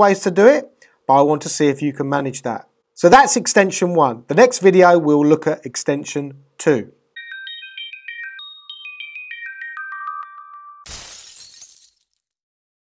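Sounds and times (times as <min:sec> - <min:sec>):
bright music jingle: 0:07.2 - 0:10.9.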